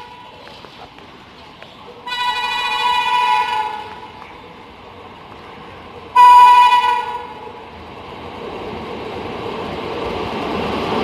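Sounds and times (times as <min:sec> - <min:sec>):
locomotive air horn blast: 0:02.0 - 0:04.1, 0:06.2 - 0:07.5.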